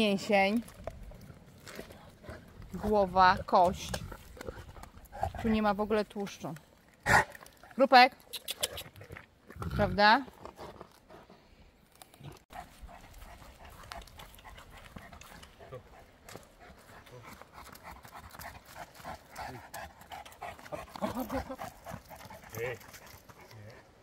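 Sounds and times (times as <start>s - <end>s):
dog panting: 12.5s - 24.0s.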